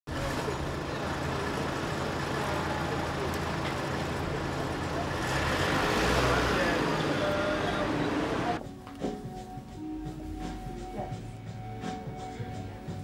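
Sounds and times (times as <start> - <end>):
faint indistinct voices: 0.1 - 8.7
road traffic noise: 0.1 - 13.0.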